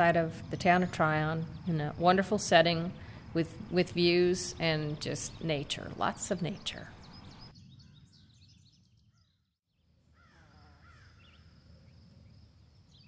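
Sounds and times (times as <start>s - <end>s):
small birds chirping: 0.0s - 9.5s.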